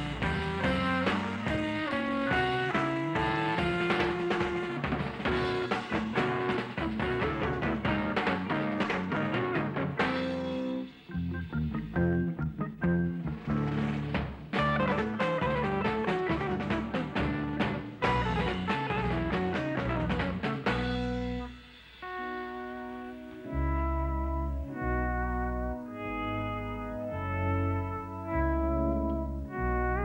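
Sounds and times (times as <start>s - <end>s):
rock band instrumental: 0.0s - 30.0s.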